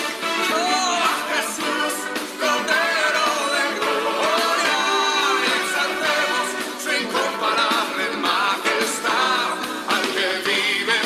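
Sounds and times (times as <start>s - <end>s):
instrumental accompaniment: 0.0s - 11.0s
voices singing worship song: 0.0s - 11.0s.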